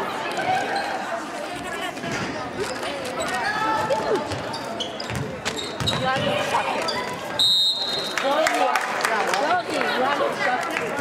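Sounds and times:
crowd chatter: 0.0 - 11.0
basketball bouncing on wooden floor: 5.0 - 6.4
referee whistle blast: 7.4 - 8.1.

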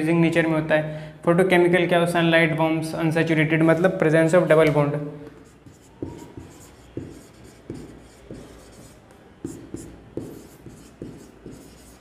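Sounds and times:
marker pen writing on whiteboard: 3.6 - 12.0.

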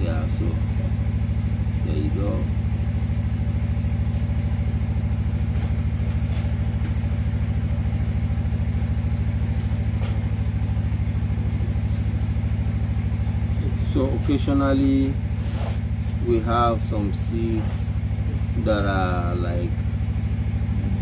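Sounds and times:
engine running steadily: 0.0 - 21.0.

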